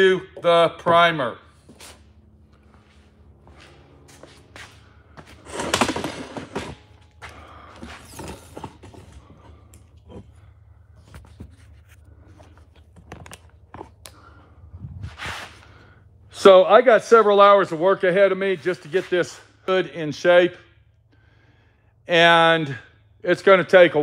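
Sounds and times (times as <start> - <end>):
steady low hum: 0.0 - 24.0
objects knocking and clattering: 5.2 - 10.3
rustling noise: 14.8 - 15.7.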